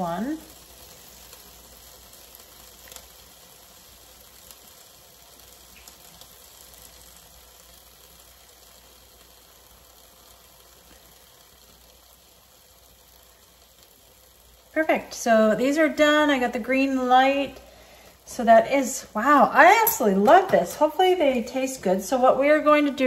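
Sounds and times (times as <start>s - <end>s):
steaks sizzling: 0.0s - 23.0s.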